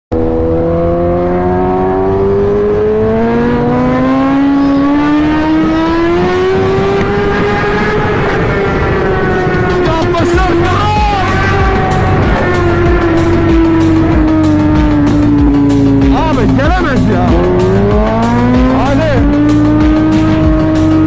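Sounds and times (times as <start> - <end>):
motorcycle and car engines at speed: 0.1 - 21.0.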